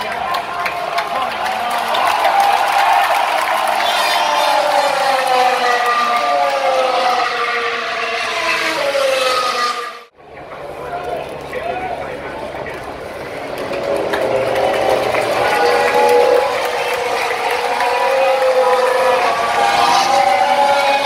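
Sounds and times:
race cars passing at speed: 0:00.0 - 0:21.0.

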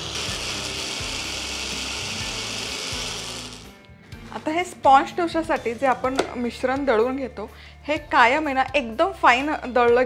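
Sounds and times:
blender motor running: 0:00.0 - 0:03.8.

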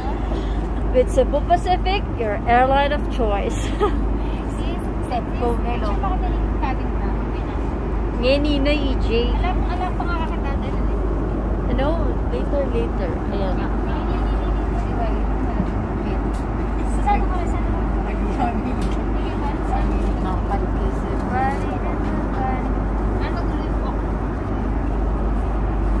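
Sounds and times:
airliner cabin air rumble: 0:00.0 - 0:26.0
passengers talking: 0:00.0 - 0:26.0.

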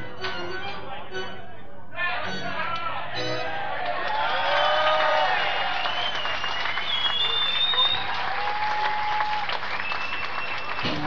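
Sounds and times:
crowd cheering: 0:02.2 - 0:11.0.

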